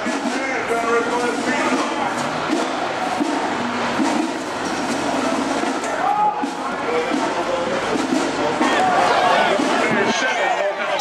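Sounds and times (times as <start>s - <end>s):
marching band playing loudly: 0.0s - 11.0s.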